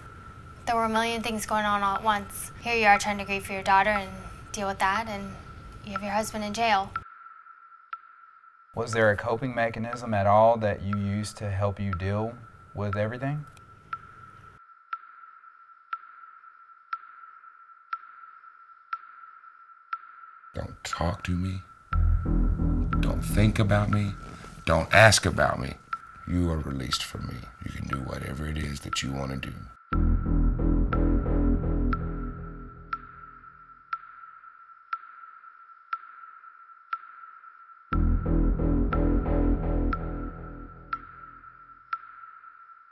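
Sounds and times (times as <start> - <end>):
low backing music: 8.8 - 13.6, 20.6 - 33.7, 37.9 - 41.6
steady high electronic tone: 21.9 - 25.0, 29.9 - 33.7, 37.9 - 41.8.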